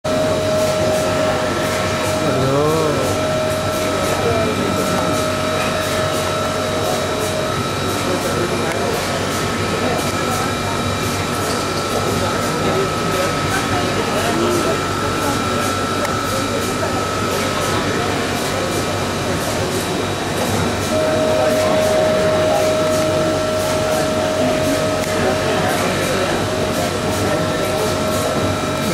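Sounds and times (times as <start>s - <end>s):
steady whine: 0.1s - 18.6s, 20.0s - 28.9s
crowd noise: 0.1s - 28.9s
machinery: 0.1s - 28.9s
person speaking: 2.2s - 3.3s.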